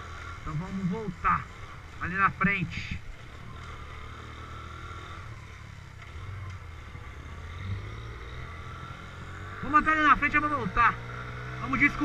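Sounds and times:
small motorcycle engine running: 0.0 - 12.0.

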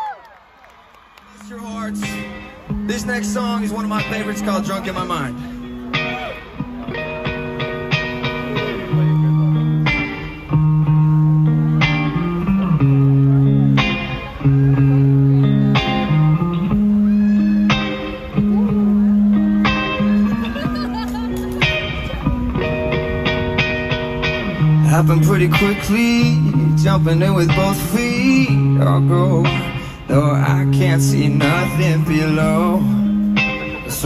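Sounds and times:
electric guitar picking notes: 1.3 - 34.0
sustained bass notes: 1.4 - 34.0.

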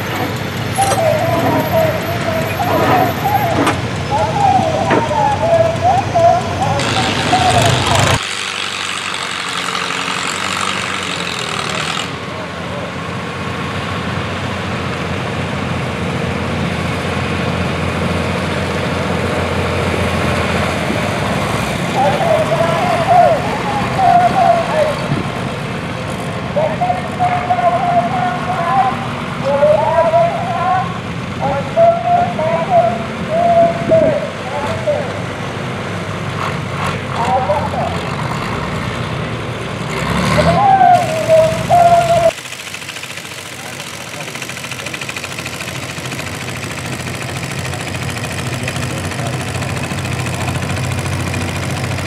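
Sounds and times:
muffled voices: 0.0 - 8.2, 21.9 - 35.3, 37.1 - 38.0, 40.5 - 42.4
people talking: 0.0 - 8.2, 21.9 - 25.2, 25.9 - 35.3, 37.1 - 38.1, 40.4 - 42.4, 43.6 - 45.1, 48.5 - 49.7
tractor engines idling: 0.0 - 52.0.

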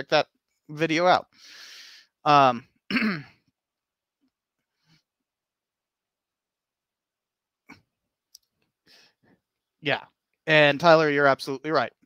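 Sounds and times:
soft breath: 8.8 - 9.4.

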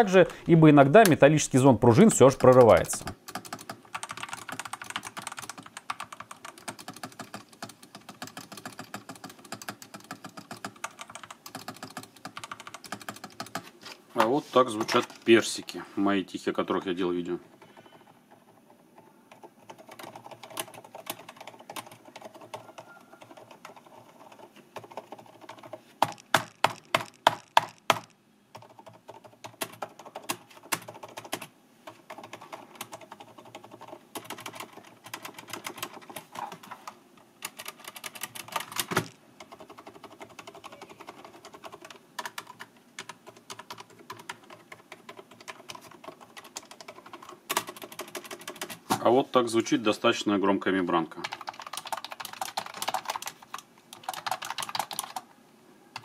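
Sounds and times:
soft mechanical keyboard typing: 1.0 - 15.6, 16.8 - 48.9, 51.1 - 55.3.

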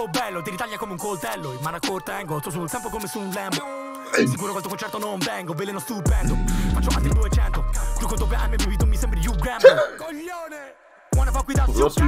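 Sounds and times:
rapping over a hip-hop beat: 0.0 - 12.0
deep sustained bass: 6.1 - 9.4.

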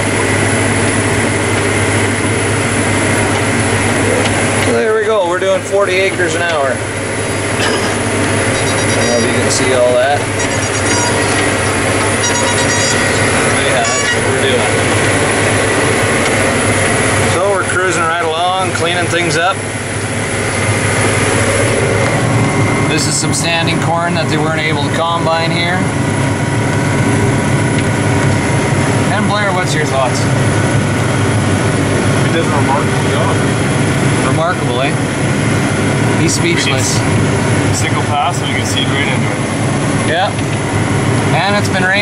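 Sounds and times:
faint steady whine: 0.0 - 42.0
tractor engine droning: 0.0 - 42.0.

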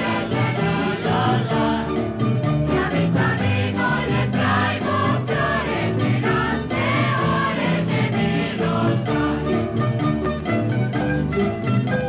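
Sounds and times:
choir singing with accompaniment: 0.0 - 10.2.

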